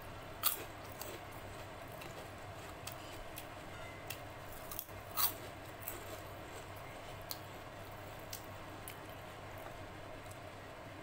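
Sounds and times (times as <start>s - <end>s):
loud crunches of crisp snack: 0.4s - 3.2s, 4.6s - 6.7s
chewing crackles: 0.4s - 3.5s, 4.1s - 10.4s.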